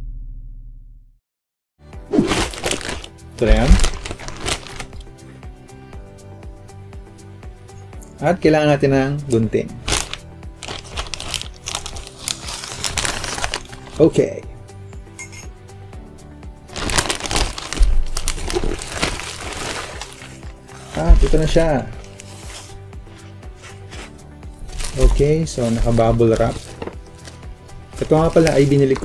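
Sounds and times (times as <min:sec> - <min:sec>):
upbeat background music: 0:01.8 - 0:29.0
plastic mailer bag crinkling: 0:02.3 - 0:05.0, 0:09.8 - 0:14.1, 0:16.7 - 0:22.7, 0:24.6 - 0:29.0.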